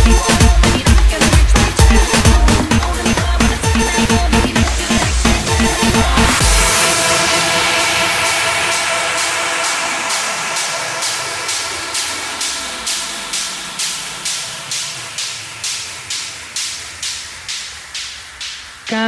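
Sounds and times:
held synth chords: 0.0s - 19.0s
rhythmic pulsing noise swells: 0.0s - 19.0s.

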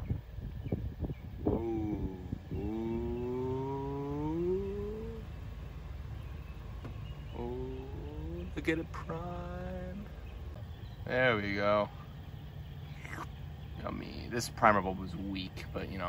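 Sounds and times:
person making wordless held tones: 1.4s - 5.3s, 7.3s - 10.1s.

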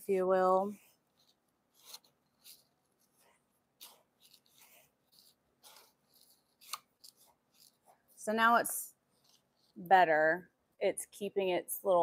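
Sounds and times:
stir stick scraping granular slurry: 1.1s - 8.4s.

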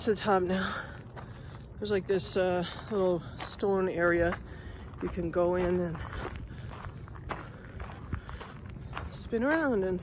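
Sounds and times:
footsteps on stony ground: 0.0s - 10.0s.

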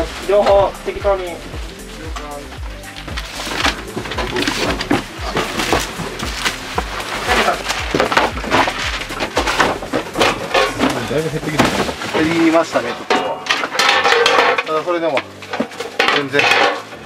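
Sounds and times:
background music with beat: 0.0s - 17.0s
boxes knocking and rustling: 0.0s - 17.0s.

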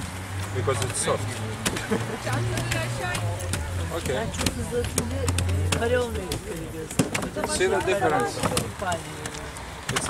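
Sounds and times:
people talking over each other: 0.0s - 10.0s.

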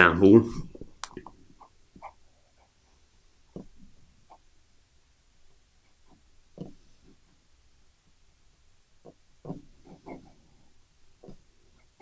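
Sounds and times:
fountain pen scratching paper: 9.5s - 10.5s.

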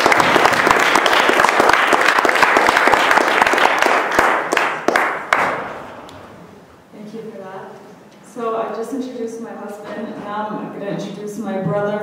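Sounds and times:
audience applauding: 0.0s - 5.9s.

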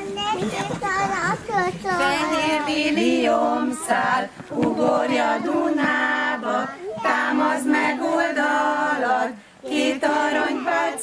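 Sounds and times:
children and adults chattering: 0.0s - 8.1s, 10.0s - 11.0s.

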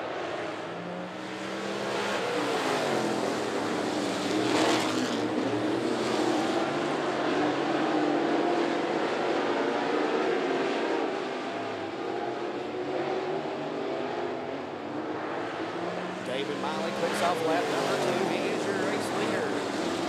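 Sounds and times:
race car engines at full throttle: 0.0s - 20.0s.

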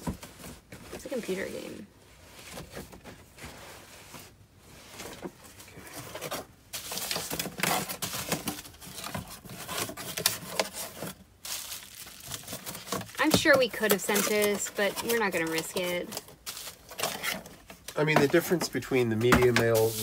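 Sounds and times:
cardboard boxes rustling and scraping: 0.0s - 20.0s.

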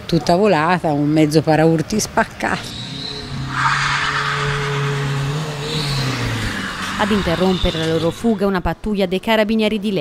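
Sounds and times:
car engine revving: 2.6s - 8.8s
harsh rush of noise: 2.6s - 8.8s.

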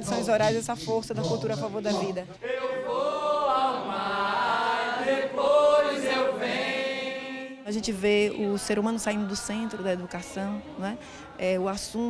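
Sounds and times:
group chanting long notes: 0.0s - 11.7s.

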